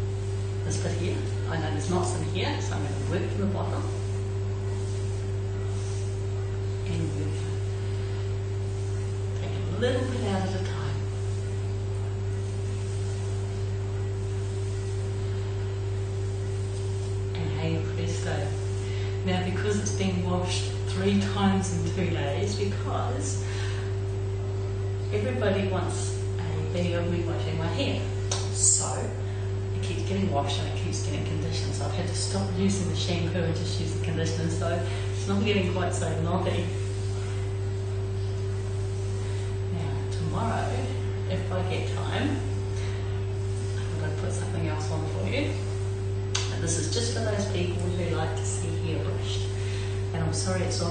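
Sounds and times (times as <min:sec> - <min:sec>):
low electrical hum: 0:00.0 - 0:50.9
even hiss: 0:00.1 - 0:24.2.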